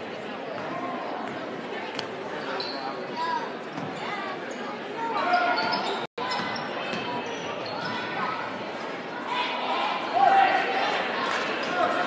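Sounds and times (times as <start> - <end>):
crowd voices: 0.0 - 12.0
shoe squeaks: 2.4 - 3.0, 4.0 - 8.1.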